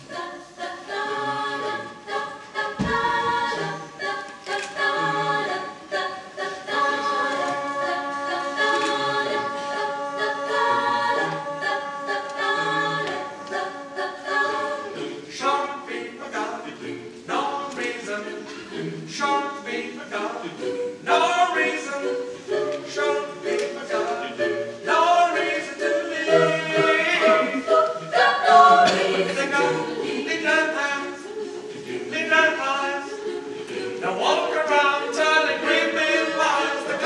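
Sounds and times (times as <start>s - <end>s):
choir singing a cappella: 0.0s - 37.0s
low thump: 2.8s - 3.1s.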